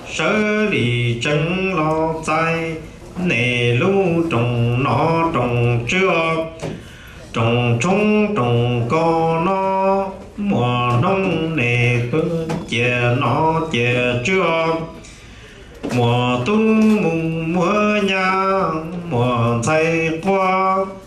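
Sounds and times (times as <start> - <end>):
man chanting unaccompanied: 0.0 - 15.0, 15.8 - 21.0.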